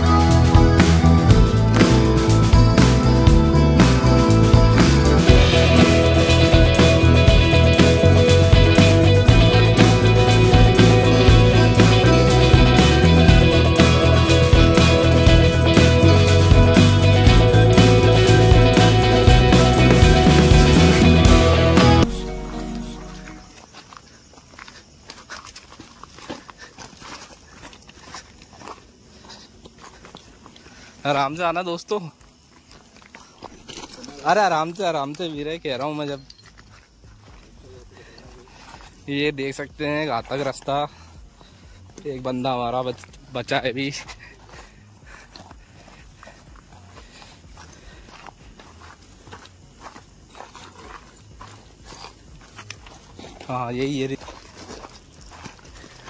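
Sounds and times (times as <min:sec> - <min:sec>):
music: 0:00.0 - 0:23.6, 0:35.0 - 0:56.0
footsteps on stones and dry leaves: 0:22.1 - 0:56.0.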